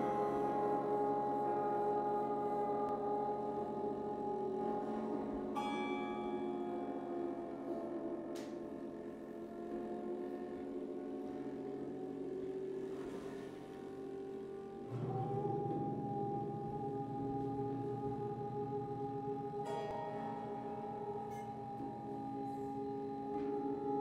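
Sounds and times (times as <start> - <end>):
bowed acoustic guitar drone: 0.0 - 24.0.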